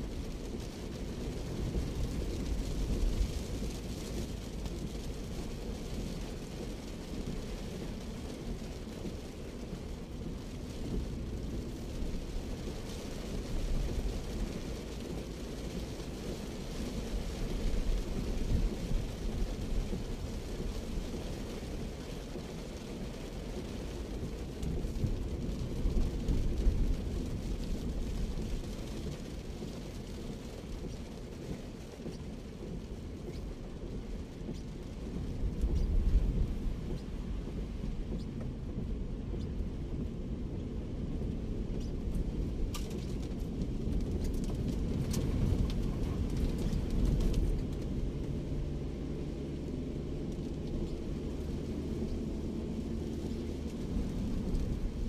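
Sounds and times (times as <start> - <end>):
car engine and tyres rumbling: 0.0 - 55.0
rain hissing on car: 0.0 - 55.0.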